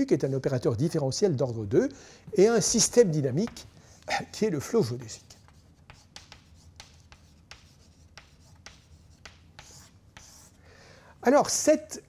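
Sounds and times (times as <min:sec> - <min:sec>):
chalk writing on blackboard: 0:03.4 - 0:10.6.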